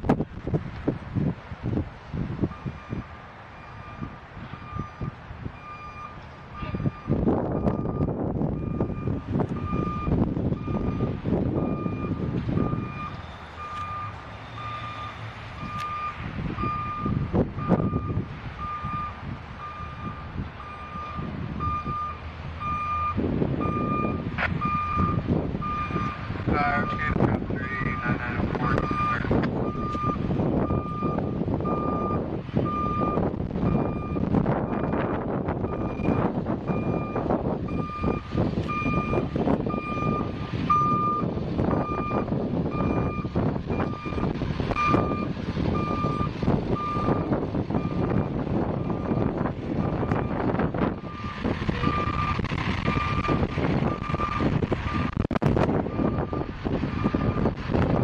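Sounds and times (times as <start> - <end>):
truck engine: 0.0 - 58.0
wind buffeting microphone: 0.0 - 58.0
reversing alarm beeping: 2.5 - 55.2, 55.9 - 57.6.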